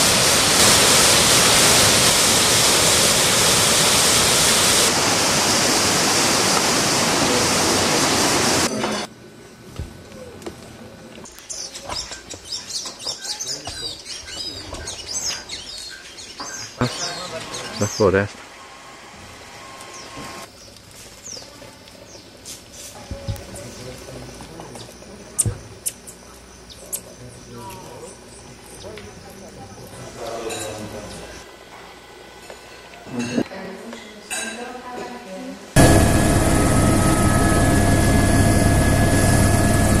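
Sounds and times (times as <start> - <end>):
aircraft engine noise: 0.0 - 9.1, 35.8 - 40.0
songbirds chirping: 11.2 - 18.3, 19.8 - 22.5, 23.3 - 31.4.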